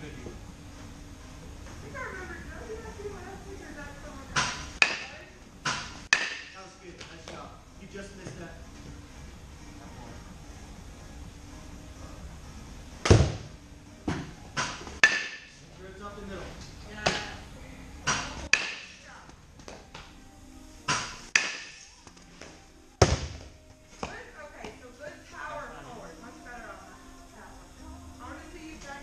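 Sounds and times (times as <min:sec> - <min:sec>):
baseball bat hitting ball: 0:04.4 - 0:06.6, 0:13.0 - 0:13.5, 0:14.1 - 0:15.5, 0:18.1 - 0:19.0, 0:20.9 - 0:21.8, 0:23.0 - 0:23.5
ball landing and bouncing: 0:13.0 - 0:15.4, 0:23.0 - 0:24.2.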